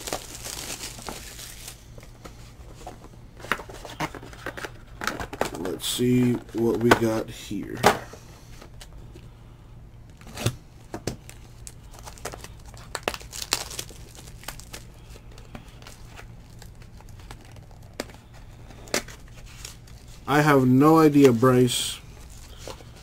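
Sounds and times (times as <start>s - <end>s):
shrink wrap crinkling and tearing: 0.0s - 2.2s, 11.2s - 23.0s
low steady hum: 0.0s - 23.0s.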